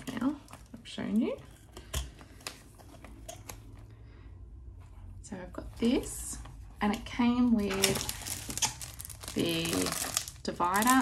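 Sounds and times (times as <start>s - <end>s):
plastic sleeve rustling: 6.8s - 11.0s.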